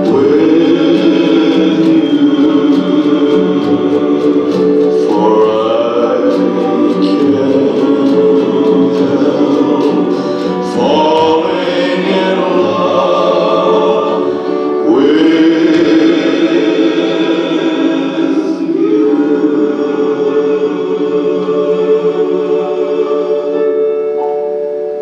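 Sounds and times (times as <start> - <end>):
choir singing held chords: 0.0 - 25.0.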